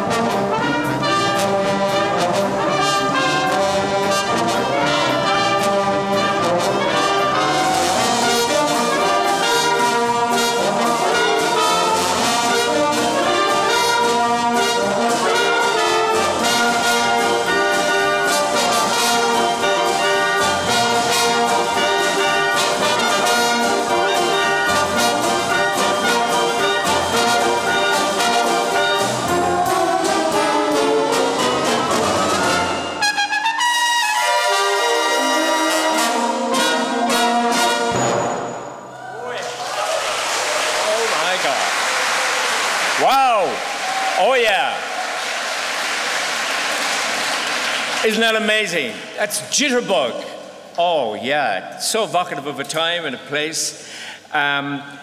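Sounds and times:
big band brass playing swing: 0.0 - 38.8.

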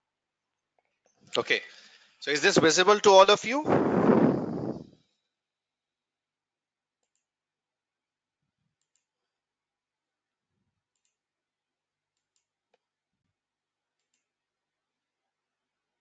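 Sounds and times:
faint computer mouse clicks: 8.8 - 9.2, 10.9 - 11.2, 14.0 - 14.3.

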